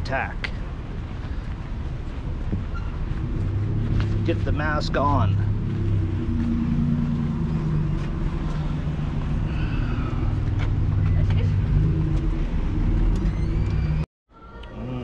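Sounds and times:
car engines and traffic rumble: 0:00.0 - 0:14.1.

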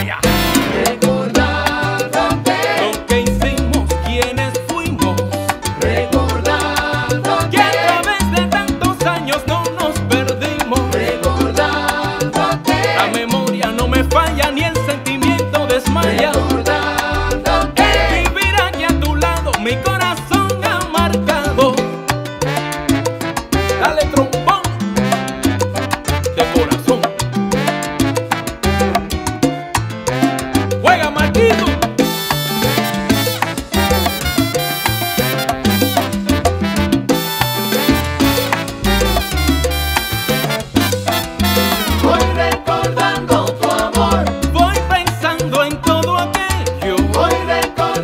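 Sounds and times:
repeating bass line: 0:00.0 - 0:09.2, 0:09.8 - 0:45.0
percussion: 0:00.0 - 0:48.0
horns: 0:00.2 - 0:01.2, 0:22.5 - 0:24.0, 0:32.1 - 0:42.3.

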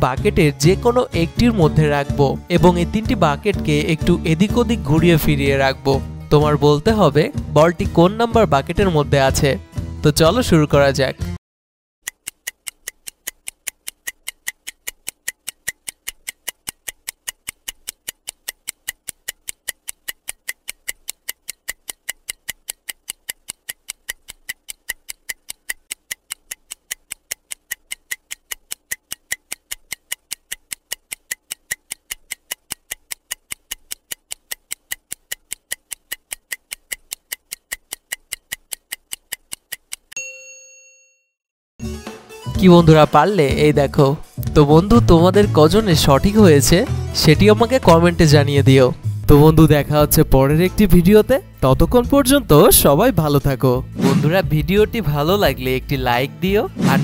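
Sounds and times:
stopwatch ticking: 0:12.0 - 0:40.2, 0:43.2 - 0:57.0
bell ding: 0:40.2 - 0:41.4.

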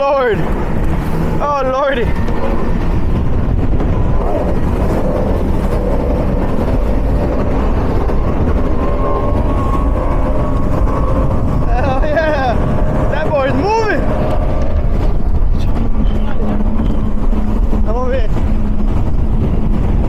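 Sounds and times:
outboard engines roaring: 0:00.0 - 0:20.0
rush of wind and water: 0:00.0 - 0:20.0.

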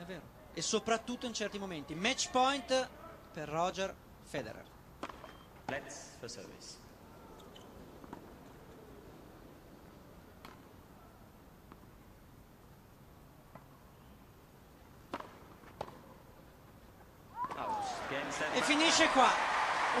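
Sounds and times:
tennis ball knocks: 0:05.0 - 0:05.8, 0:15.1 - 0:16.1.

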